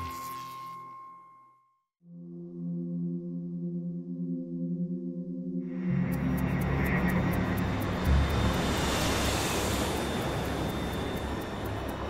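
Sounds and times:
droning music: 0:02.1 - 0:12.0
airliner jet engines passing: 0:05.9 - 0:12.0.

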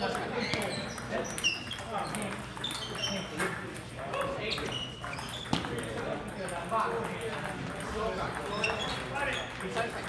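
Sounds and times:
table tennis balls clicking: 0:00.0 - 0:10.0
voices chattering in a large hall: 0:00.0 - 0:10.0.

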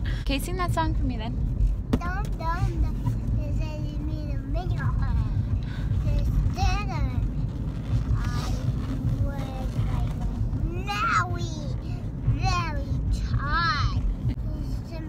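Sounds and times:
car road noise rumble: 0:00.0 - 0:15.0.

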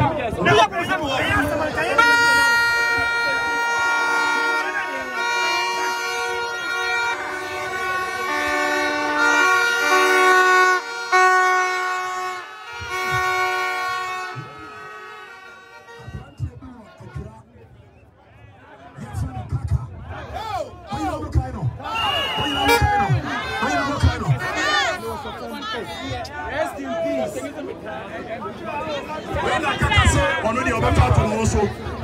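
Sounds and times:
crowd voices: 0:00.0 - 0:32.0
plastic stadium horns blowing: 0:01.5 - 0:17.5, 0:21.9 - 0:25.0.

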